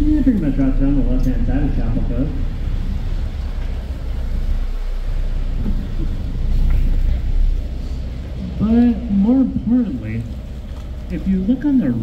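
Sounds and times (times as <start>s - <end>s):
boat engine low rumble: 0.0s - 12.0s.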